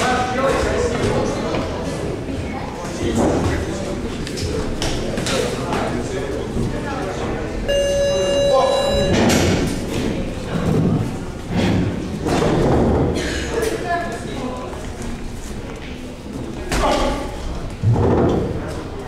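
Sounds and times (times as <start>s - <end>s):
boxing bell ring: 7.7s - 9.8s.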